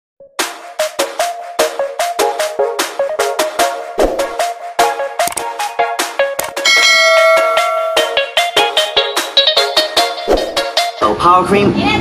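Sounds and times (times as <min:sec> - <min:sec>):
intro music beats: 0:00.2 - 0:11.2
bell chime: 0:06.6 - 0:08.5.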